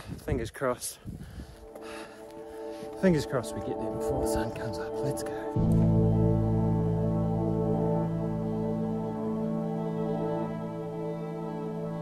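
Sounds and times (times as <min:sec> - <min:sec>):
wind noise on microphone: 0:00.0 - 0:01.8
ambient music with held chords: 0:01.6 - 0:12.0.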